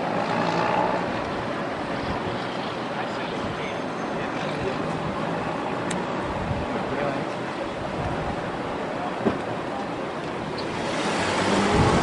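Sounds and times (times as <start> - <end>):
wind on microphone: 4.5 - 7.2, 7.8 - 8.8, 10.6 - 12.0
car driving past: 10.6 - 12.0.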